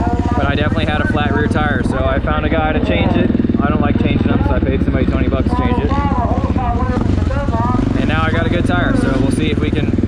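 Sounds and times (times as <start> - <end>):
motorcycle engine at low revs: 0.0 - 10.0.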